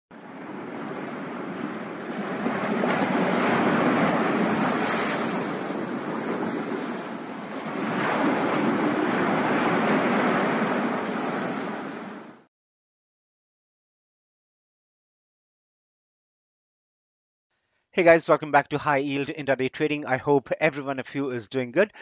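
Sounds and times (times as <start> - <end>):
ocean surf breaking on rocks: 0.2 - 12.5.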